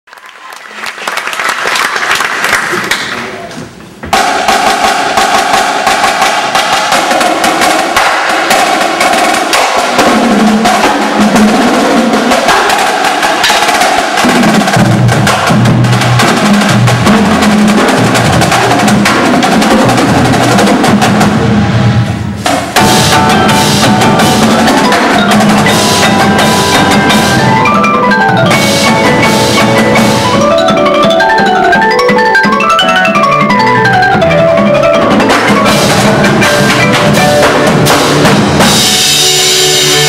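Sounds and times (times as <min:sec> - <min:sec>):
snare drums rapid strikes: 0:04.0 - 0:40.0
cymbals: 0:04.1 - 0:32.5, 0:34.2 - 0:40.0
bass drums: 0:14.2 - 0:31.2, 0:34.2 - 0:40.0
marimba: 0:22.8 - 0:40.0.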